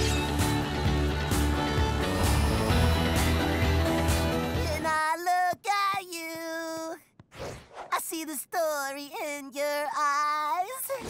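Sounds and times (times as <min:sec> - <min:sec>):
boy singing unaccompanied: 0:04.6 - 0:07.0.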